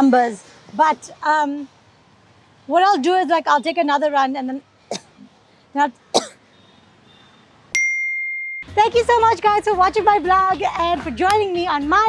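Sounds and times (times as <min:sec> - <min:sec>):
person coughing: 0:06.2 - 0:06.4
bell-like ding: 0:07.7 - 0:08.7.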